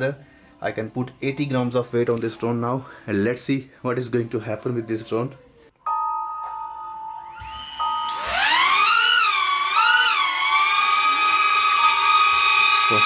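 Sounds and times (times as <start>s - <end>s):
drone propellers whining: 7.3s - 13.0s.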